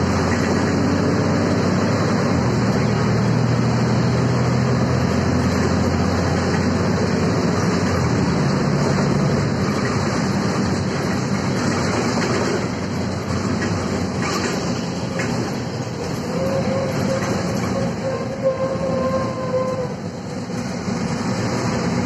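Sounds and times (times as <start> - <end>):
bus engine hum: 0.0 - 22.0
road noise: 0.0 - 22.0.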